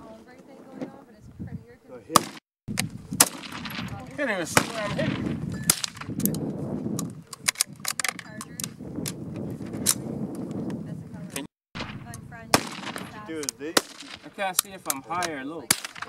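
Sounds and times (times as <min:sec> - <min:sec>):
rifle gunshots: 0:02.1 - 0:06.3, 0:11.8 - 0:16.0.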